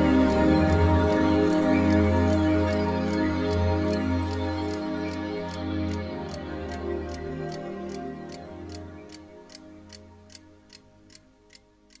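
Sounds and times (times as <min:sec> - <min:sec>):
soft background music: 0:00.0 - 0:12.0
clock ticking: 0:03.4 - 0:12.0.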